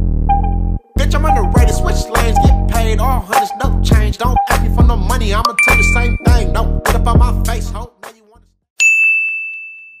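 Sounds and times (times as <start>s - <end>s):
ding with ringing tone: 5.5s - 6.4s, 8.8s - 10.0s.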